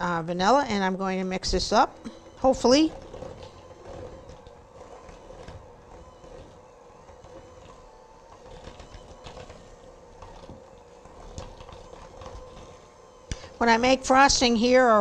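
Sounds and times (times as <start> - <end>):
electric hand mixer humming: 0.0 - 15.0.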